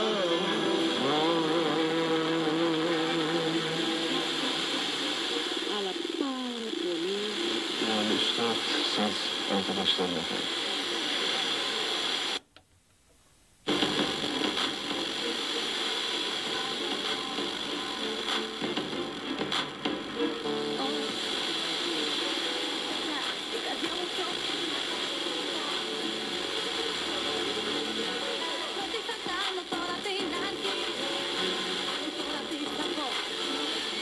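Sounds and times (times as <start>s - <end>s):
radio voice: 0.0s - 4.9s, 5.6s - 11.9s
radio music: 0.0s - 34.0s
radio noise: 0.0s - 34.0s.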